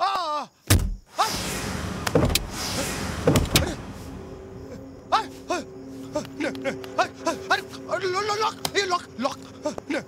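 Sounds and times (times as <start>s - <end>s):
sharp knocks and thuds: 3.2s - 3.7s.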